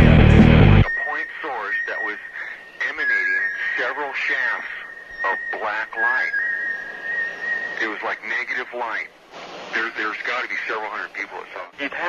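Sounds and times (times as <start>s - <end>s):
guitar rock music: 0.0s - 0.9s
recorded voice: 0.0s - 6.4s, 7.8s - 9.1s, 9.7s - 12.0s.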